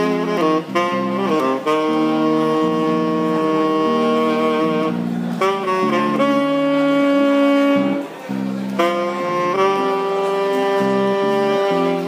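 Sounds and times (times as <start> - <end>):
lower instrument melody: 0.0 - 12.0
saxophone holding long note: 0.0 - 12.0.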